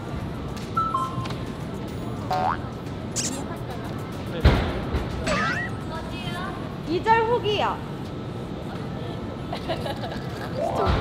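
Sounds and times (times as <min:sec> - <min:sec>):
springy rising cartoon tone: 0:05.3 - 0:05.8
background music: 0:10.6 - 0:11.0.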